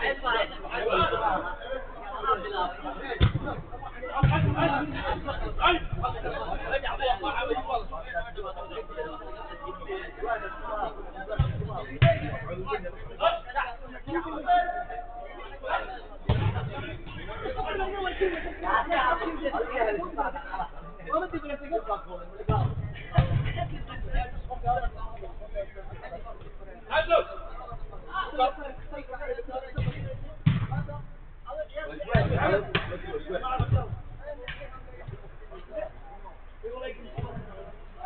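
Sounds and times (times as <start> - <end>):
players' voices: 0.0 - 38.0
football being kicked: 3.2 - 3.6, 4.2 - 4.7, 22.5 - 23.7, 29.8 - 30.9
football being struck: 3.2 - 5.1, 11.3 - 12.6, 16.3 - 17.2, 22.5 - 24.0, 29.7 - 31.0, 32.1 - 35.2.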